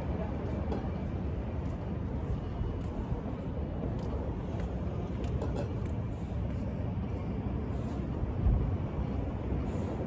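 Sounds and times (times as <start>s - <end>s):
low outdoor rumble: 0.0s - 10.0s.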